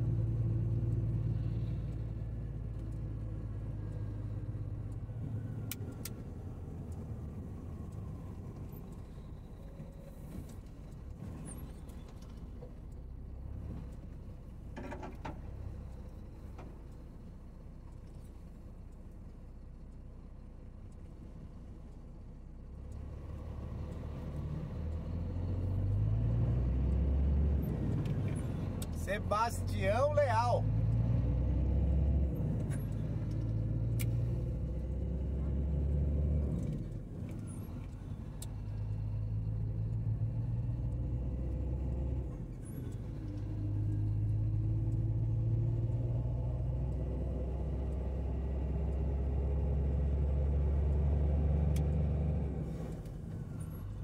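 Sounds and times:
road noise: 0.0s - 54.0s
vehicle engine driving: 0.0s - 54.0s.

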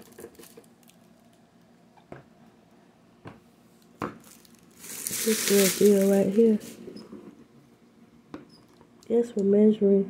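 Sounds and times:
plastic cup handling: 4.0s - 6.8s.

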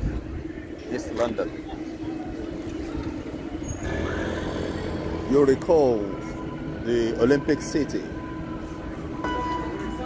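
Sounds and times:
vehicle mechanical hum with whine: 2.3s - 10.0s.

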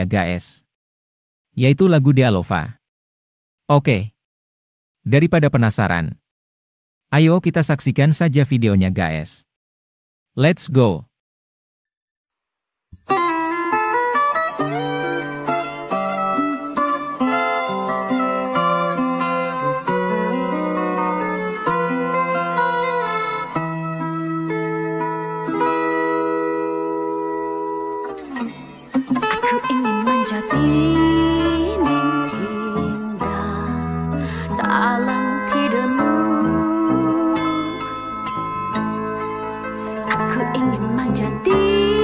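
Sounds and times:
fingerstyle acoustic guitar: 13.0s - 42.0s.

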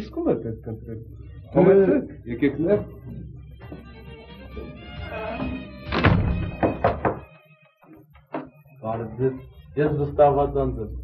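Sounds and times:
background music: 0.0s - 11.0s
knuckles knocking on a door: 6.4s - 7.3s.

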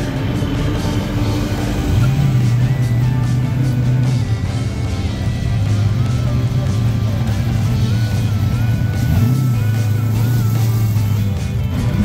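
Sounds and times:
background music: 0.0s - 12.0s
car engine rumble: 0.0s - 12.0s.

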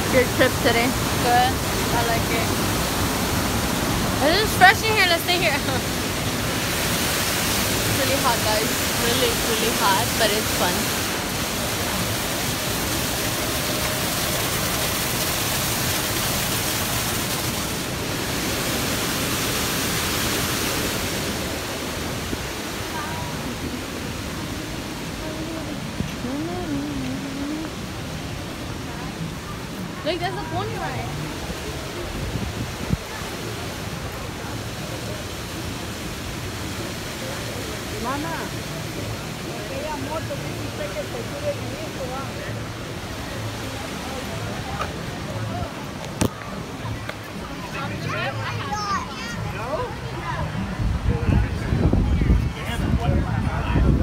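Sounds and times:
steady rushing hiss: 0.0s - 37.4s
people talking in background: 0.0s - 54.0s.

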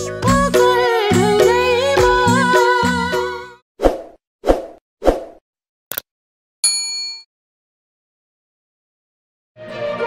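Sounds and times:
bell ding: 6.6s - 7.3s
background music: 9.6s - 10.0s.

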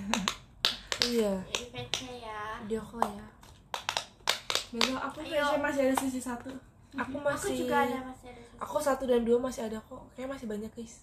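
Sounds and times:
women talking: 1.0s - 3.4s, 4.7s - 11.0s.

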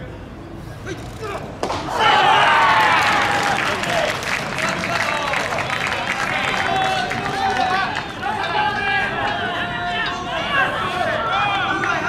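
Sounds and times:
many voices shouting: 1.2s - 12.0s
baseball smacking into mitt: 1.6s - 1.9s.

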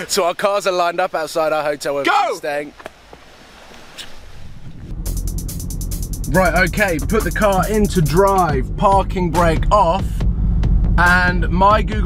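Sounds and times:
low rising swell: 4.4s - 11.7s
music with ticking beat and bass: 4.9s - 12.0s.

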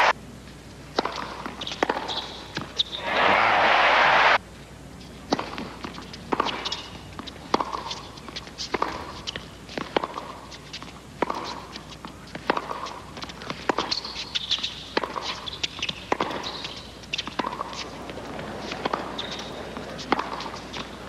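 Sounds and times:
crowd applause: 3.0s - 4.4s
tennis ball struck by rackets: 7.5s - 8.0s, 8.7s - 9.1s, 9.8s - 10.4s, 11.2s - 11.6s, 12.3s - 14.0s, 14.6s - 20.9s
shoe squeaks: 13.9s - 17.3s, 19.1s - 19.6s.

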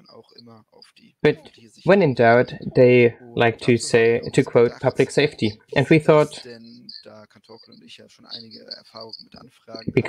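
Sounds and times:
faint high-pitched whine: 0.0s - 10.0s
interpreter speaking: 0.0s - 10.0s
quiet speech: 0.0s - 10.0s.

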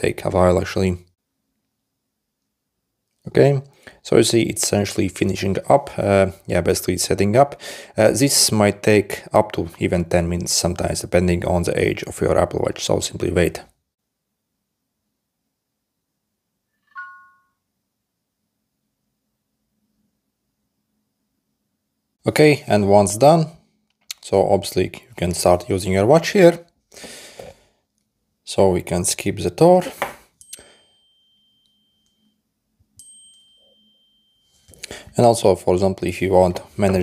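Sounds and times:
two-tone electronic chime: 16.8s - 17.6s, 30.4s - 32.4s, 33.0s - 34.7s.

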